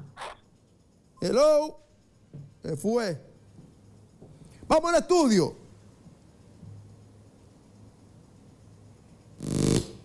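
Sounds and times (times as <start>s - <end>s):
buzzy electronic tone: 9.4s - 10.0s.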